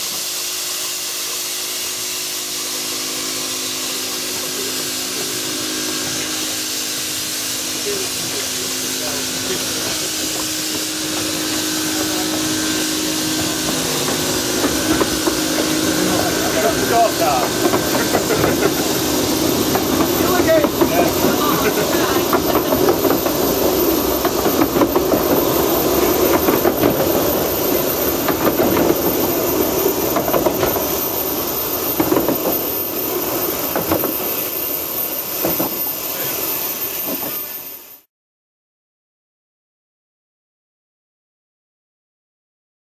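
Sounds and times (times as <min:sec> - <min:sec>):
steam locomotive hissing: 0:00.0 - 0:38.1
wheels clattering on rails: 0:02.8 - 0:37.6.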